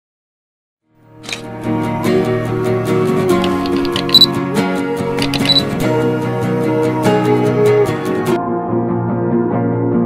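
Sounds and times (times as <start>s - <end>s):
music: 0.8s - 10.0s
camera shutter clicks: 1.2s - 1.5s
short high beeps: 3.5s - 4.3s, 5.2s - 5.7s.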